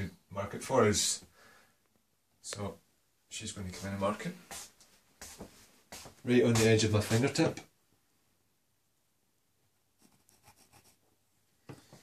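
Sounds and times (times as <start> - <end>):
pencil scratching on wall: 10.0 - 11.2.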